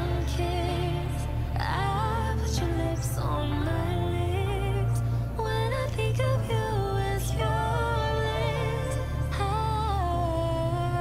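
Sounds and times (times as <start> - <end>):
slow pop song: 0.0 - 11.0
steady bass: 0.0 - 11.0
woman singing: 0.0 - 11.0.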